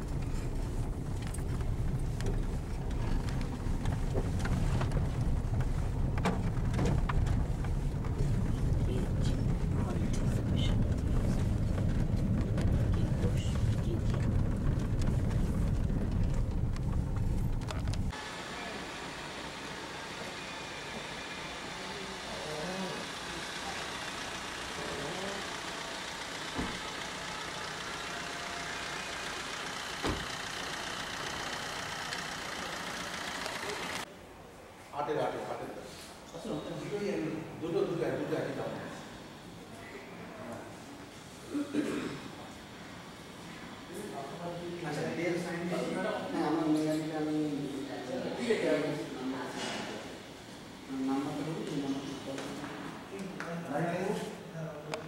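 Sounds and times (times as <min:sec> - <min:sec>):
road and engine rumble inside car: 0:00.0 - 0:18.3
street ambience: 0:00.0 - 0:45.7.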